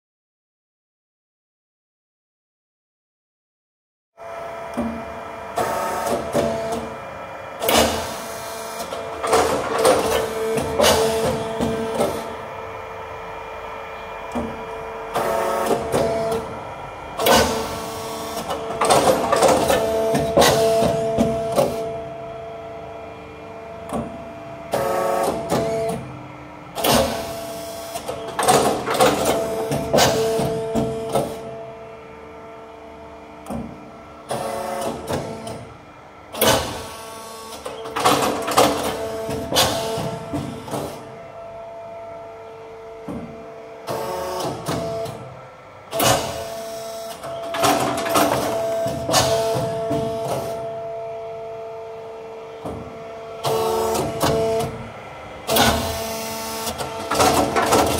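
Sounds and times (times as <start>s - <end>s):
hydraulic pump whine: 4.2s - 57.9s.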